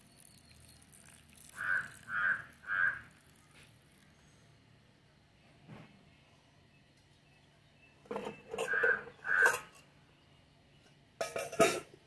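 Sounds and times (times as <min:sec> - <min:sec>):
crow cawing: 0:01.6 - 0:03.1, 0:08.7 - 0:09.5.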